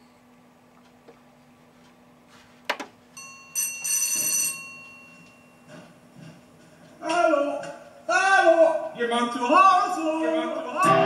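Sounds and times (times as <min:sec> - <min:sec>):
metallic bell-like ringing: 0:03.2 - 0:05.7.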